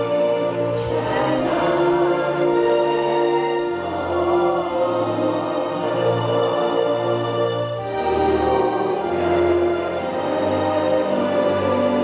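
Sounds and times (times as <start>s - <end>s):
choir singing: 0.0s - 12.0s
musical accompaniment: 0.0s - 12.0s.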